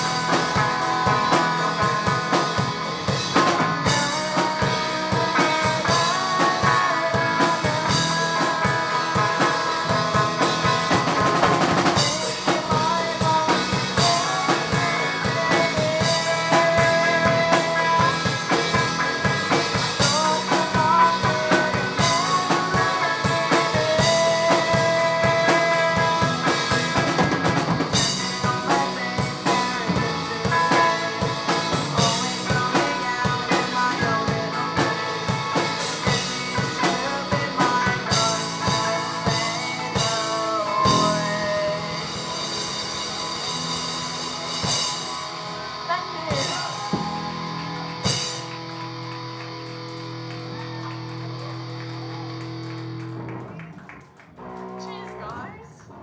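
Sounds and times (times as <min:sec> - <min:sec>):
drum kit: 0:00.0 - 0:55.4
bass guitar: 0:00.0 - 0:56.0
electric guitars: 0:00.0 - 0:56.0.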